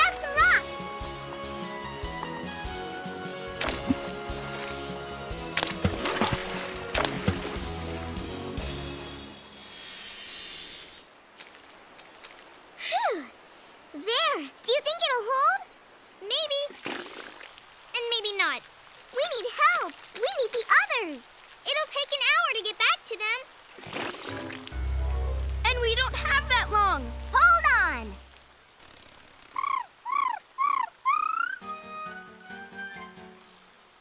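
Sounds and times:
water gushing rumble: 0:03.6 - 0:08.8, 0:23.7 - 0:28.6
cartoon music: 0:24.8 - 0:28.3
high-pitched cartoon vocalisations: 0:29.6 - 0:31.6.

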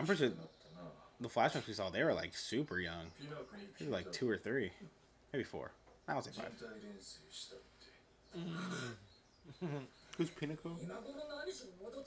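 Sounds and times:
man laughing: 0:09.6 - 0:10.8.

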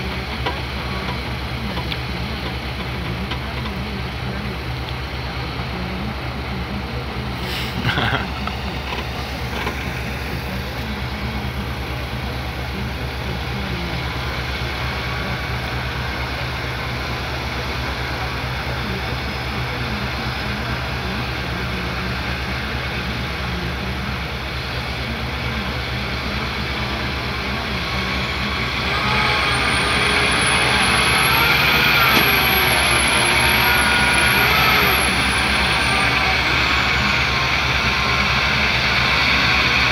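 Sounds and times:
high whine: 0:00.0 - 0:39.9
truck diesel engine under load: 0:00.0 - 0:39.9.

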